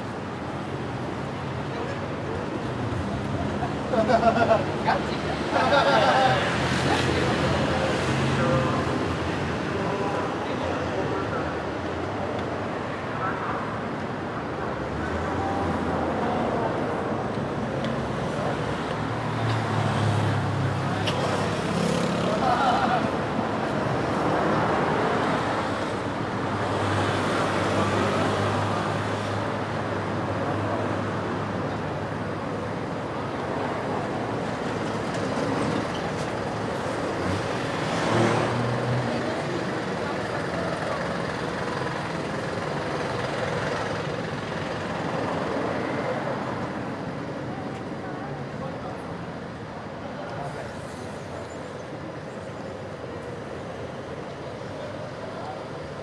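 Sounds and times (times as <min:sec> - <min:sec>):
road traffic: 0:00.0 - 0:56.0
people talking: 0:09.6 - 0:12.2, 0:39.1 - 0:42.0, 0:47.4 - 0:51.5.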